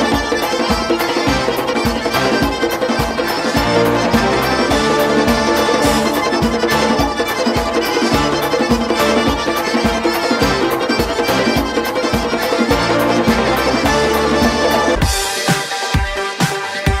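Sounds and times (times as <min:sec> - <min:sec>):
accordion melody: 0:00.0 - 0:17.0
fast drum beat: 0:00.0 - 0:17.0.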